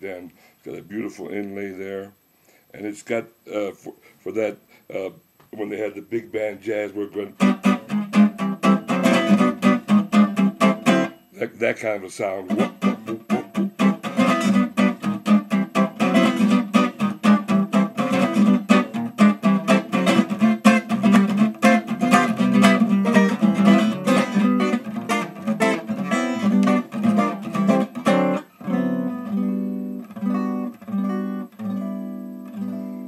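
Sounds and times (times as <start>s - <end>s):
acoustic guitar strumming chords: 4.3s - 33.0s.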